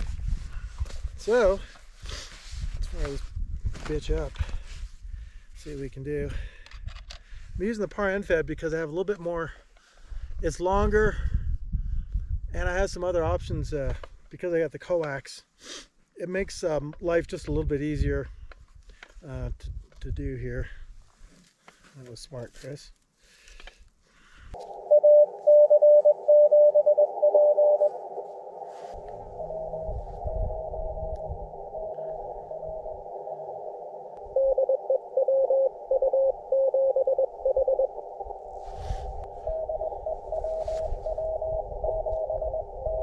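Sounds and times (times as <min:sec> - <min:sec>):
low rumble: 0:24.6 - 0:43.0
morse code tones: 0:24.6 - 0:43.0
receiver hiss: 0:24.6 - 0:43.0.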